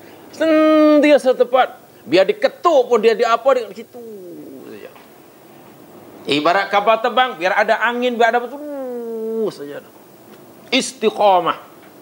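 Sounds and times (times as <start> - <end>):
short falling vocal sound: 4.0 - 5.0, 8.6 - 9.5.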